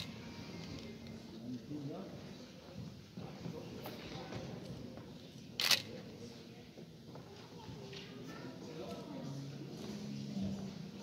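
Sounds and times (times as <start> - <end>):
low murmur of voices: 0.0 - 11.0
camera shutter click: 5.6 - 5.9.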